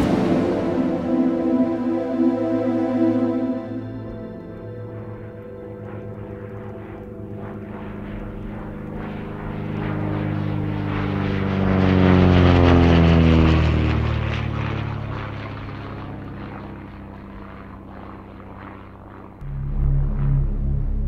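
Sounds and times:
aircraft engine drone passing: 0:00.0 - 0:21.0.

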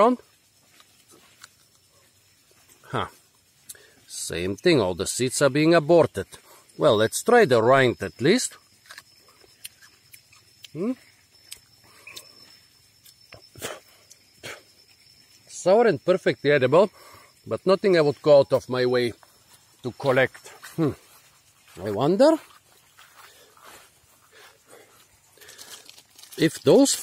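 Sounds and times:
chewing clicks and smacks: 0:08.8 - 0:12.3, 0:13.0 - 0:14.3.

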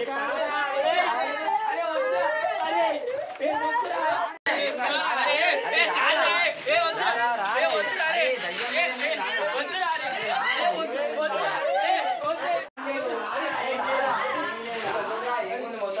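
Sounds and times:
young men chattering excitedly: 0:00.0 - 0:16.0.

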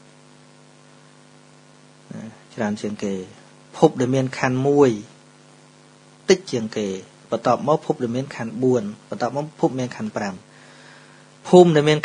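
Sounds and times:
electrical mains hum: 0:00.0 - 0:12.0
faint hiss: 0:00.0 - 0:12.0.

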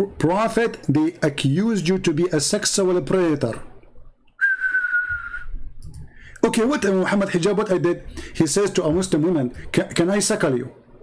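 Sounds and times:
high whistled note: 0:04.4 - 0:05.6.

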